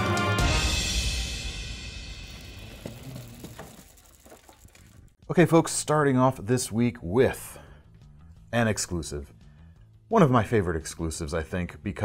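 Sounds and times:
box rolling on roller conveyor: 2.2 - 5.0.

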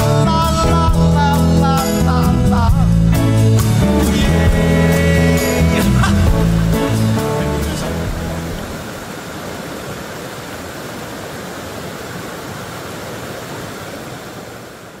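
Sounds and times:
song: 0.0 - 8.8
waterfall rushing: 3.5 - 15.0.

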